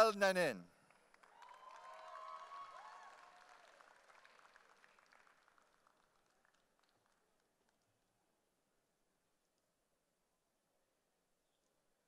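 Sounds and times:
faint audience applause: 0:00.0 - 0:07.8.

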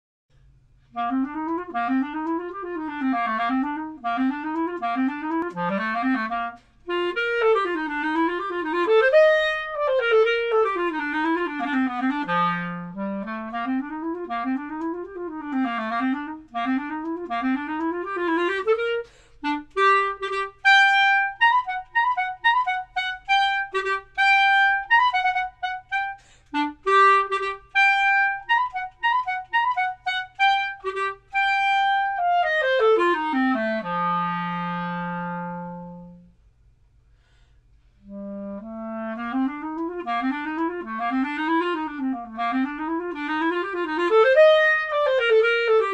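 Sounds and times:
solo clarinet playing: 0:00.8 - 0:36.4, 0:38.0 - 0:45.9.

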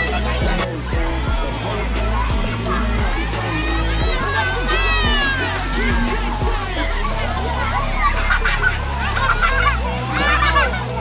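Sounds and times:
children calling and squealing: 0:00.0 - 0:11.0.

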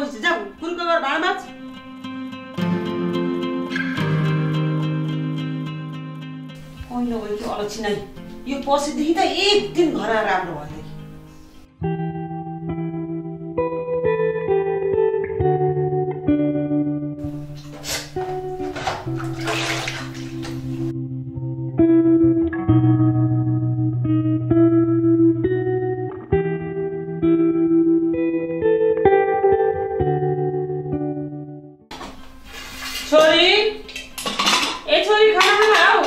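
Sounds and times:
guitar music: 0:00.0 - 0:36.0
dishes and pot being rinsed: 0:17.2 - 0:20.9, 0:31.9 - 0:36.0
water splashing into steel sink: 0:17.2 - 0:20.9, 0:31.9 - 0:36.0
cookware clattering: 0:17.3 - 0:20.9, 0:31.9 - 0:36.0.

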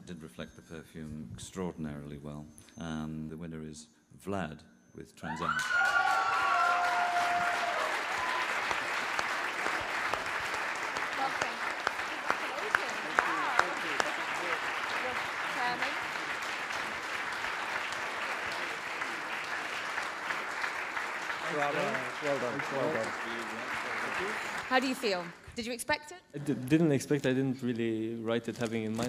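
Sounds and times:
audience applauding: 0:05.4 - 0:25.5.

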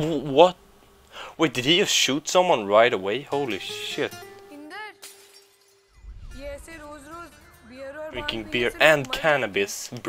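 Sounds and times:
man speaking: 0:01.4 - 0:04.2, 0:08.1 - 0:10.0
glass shattering: 0:05.0 - 0:08.0
low rumble: 0:05.9 - 0:09.2.

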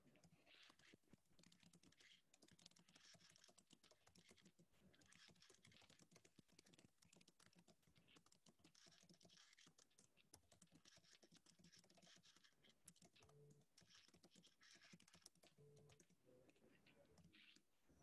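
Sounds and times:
typing on computer keyboard: 0:00.2 - 0:16.2.

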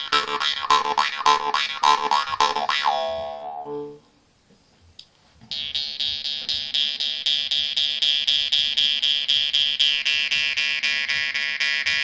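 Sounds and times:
jaw harp playing: 0:00.0 - 0:04.1, 0:05.5 - 0:12.0.

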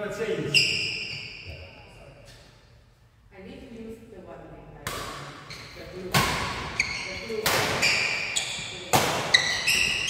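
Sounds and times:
shoes squeaking on wooden floor: 0:06.7 - 0:10.0.

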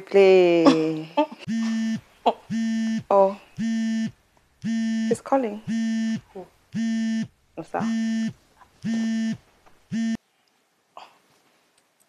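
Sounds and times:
mobile phone buzzing: 0:01.5 - 0:10.2.

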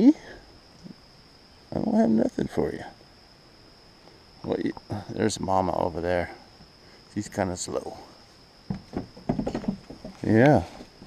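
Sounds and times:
goat hooves knocking on deck: 0:08.7 - 0:10.8.

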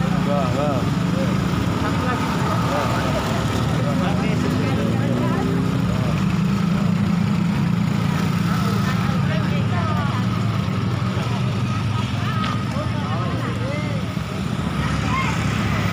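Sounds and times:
people talking: 0:00.0 - 0:15.9.

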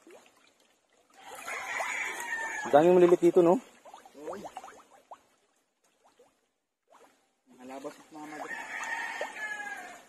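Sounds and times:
rooster crowing: 0:01.3 - 0:02.8, 0:08.3 - 0:10.0.

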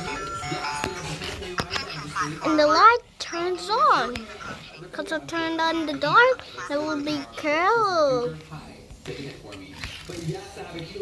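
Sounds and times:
toy electronic chime: 0:00.0 - 0:00.9.

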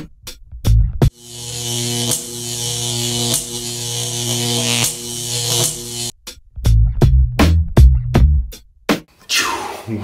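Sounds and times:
pitched electric glitch buzz: 0:01.1 - 0:06.1.

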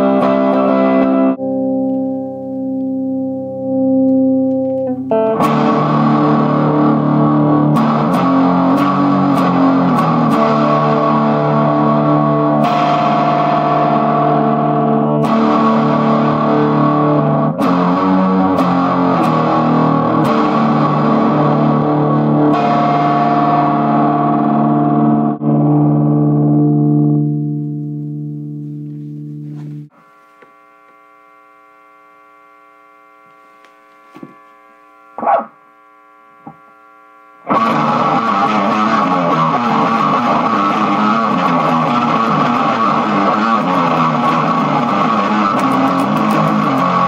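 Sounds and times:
amplifier hum: 0:00.0 - 0:47.0
electric guitar chord ringing: 0:00.0 - 0:47.0.

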